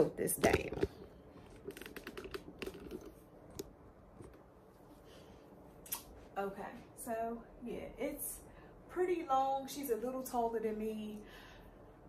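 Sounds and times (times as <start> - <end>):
phone handling clicks and rubbing: 0.4 - 4.4.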